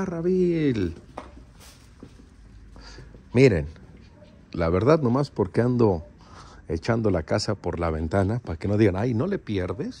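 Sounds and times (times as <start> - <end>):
faint soft footsteps: 0.0 - 5.2.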